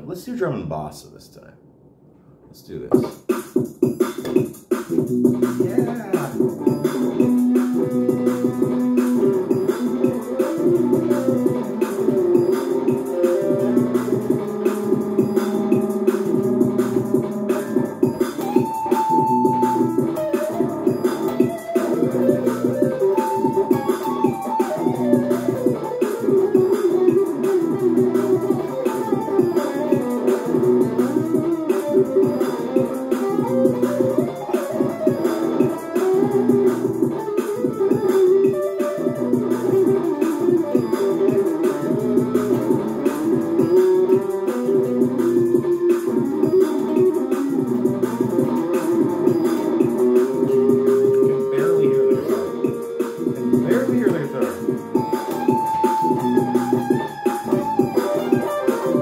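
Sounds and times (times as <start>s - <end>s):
steady drum beat: 2.6s - 59.0s
electric guitar: 4.2s - 59.0s.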